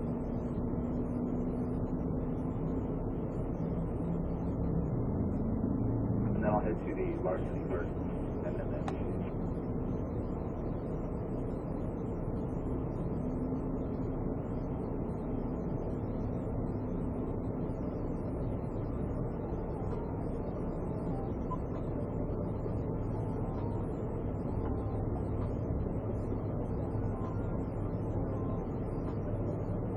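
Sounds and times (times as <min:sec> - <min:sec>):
low vehicle rumble inside car: 0:00.0 - 0:29.9.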